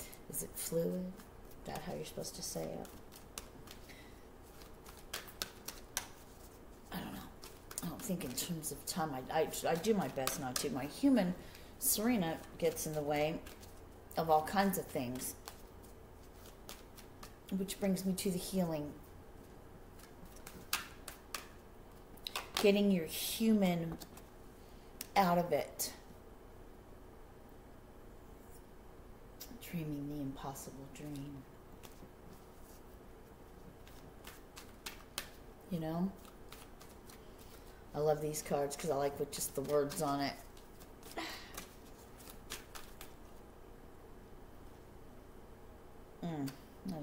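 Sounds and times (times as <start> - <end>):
cards shuffled by hand: 1.1 - 11.6, 12.4 - 17.6, 19.9 - 21.6, 22.2 - 22.7, 31.1 - 32.9, 33.5 - 43.4
playing cards clicking: 4.5 - 6.3, 33.8 - 35.4, 36.2 - 37.6, 39.9 - 43.1.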